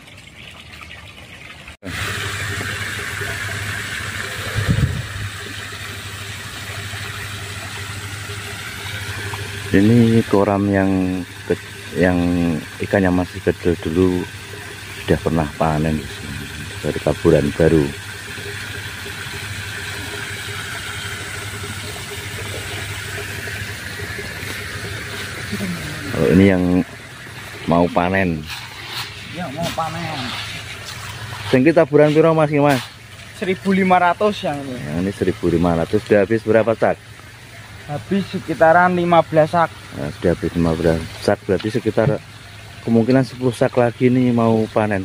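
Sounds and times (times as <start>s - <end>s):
water jet splashing into pond: 0.0s - 45.0s
engine humming: 1.3s - 45.0s
pellets hissing onto water: 19.4s - 34.4s.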